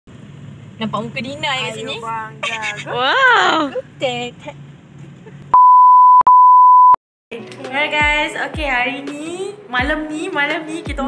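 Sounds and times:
electronic bleep tone: 5.5 - 7.0.

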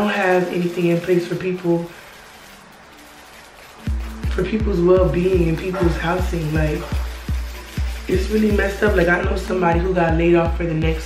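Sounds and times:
faint background music hiss: 0.0 - 11.0
bass-heavy music beat: 3.0 - 11.0.

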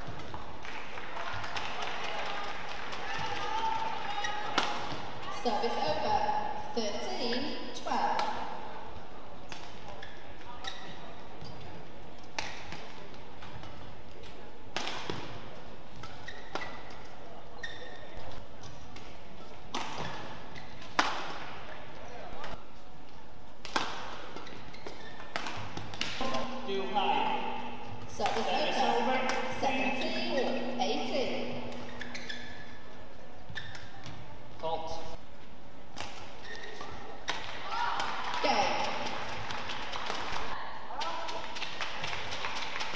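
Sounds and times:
crowd shouting and cheering: 0.8 - 5.5, 37.4 - 41.4
rackets hitting shuttlecock: 4.5 - 5.2, 12.2 - 17.2, 18.6 - 21.6, 23.6 - 26.7, 27.3 - 32.7, 35.9 - 40.5.

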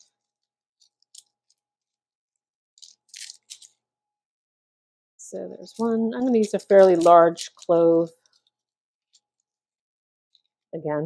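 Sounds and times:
garlic skins crackling: 2.8 - 3.8, 5.5 - 8.6.

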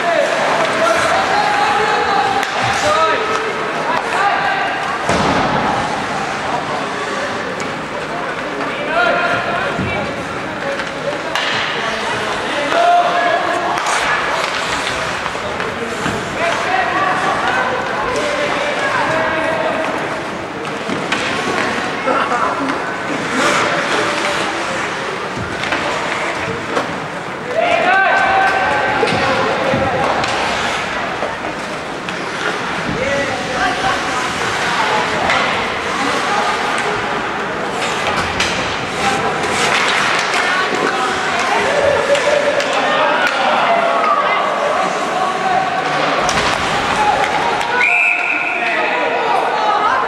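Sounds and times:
people's voices: 0.0 - 50.0
skate blades scraping ice: 13.7 - 17.5, 23.0 - 25.0.

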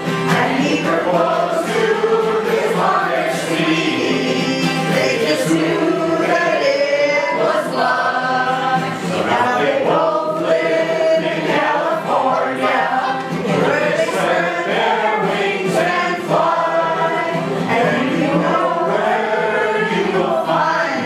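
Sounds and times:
group singing together: 0.0 - 21.0.

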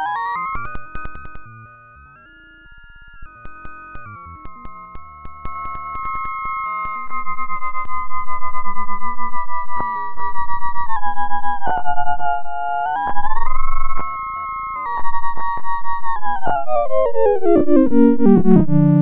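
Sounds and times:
wobbling synthesizer tone: 1.0 - 6.4, 17.1 - 19.0.

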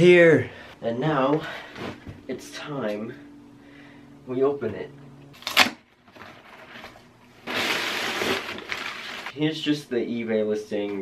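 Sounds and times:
packing paper rustling: 5.4 - 9.4.

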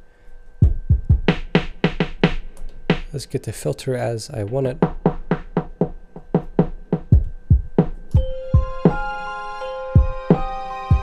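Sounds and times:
filtered drum pattern: 0.6 - 9.3, 9.9 - 11.0.

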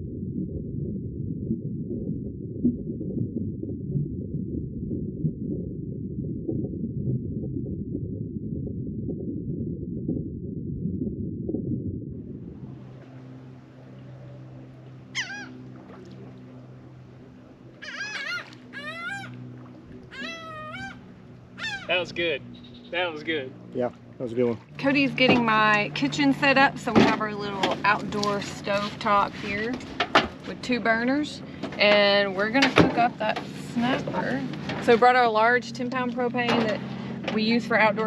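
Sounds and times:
low steady hum: 0.0 - 38.0
muffled underwater churning: 0.0 - 38.0
short high downward calls: 15.1 - 15.6, 17.8 - 19.4, 20.1 - 21.0, 21.6 - 23.1.

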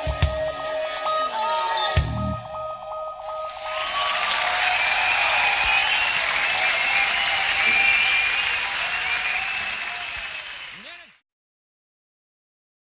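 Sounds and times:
audience cheering: 3.3 - 11.2
audience clapping: 3.3 - 11.2.

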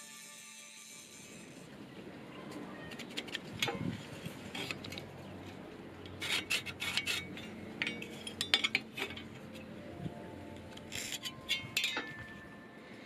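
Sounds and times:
pencil scratching on steel: 6.2 - 7.5.

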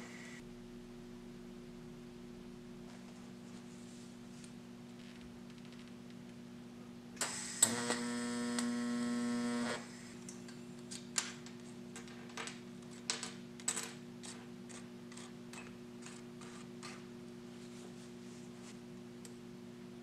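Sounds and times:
welding arc buzzing: 0.0 - 0.4, 7.2 - 10.2
constant low hum: 0.0 - 20.0.

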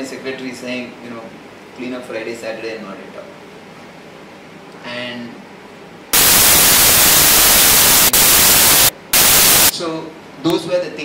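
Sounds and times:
loud static hiss: 6.1 - 9.8.

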